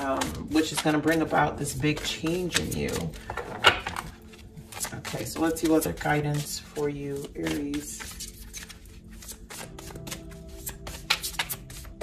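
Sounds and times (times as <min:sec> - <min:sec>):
cards being shuffled: 0:00.0 - 0:12.0
soft background music: 0:00.0 - 0:12.0.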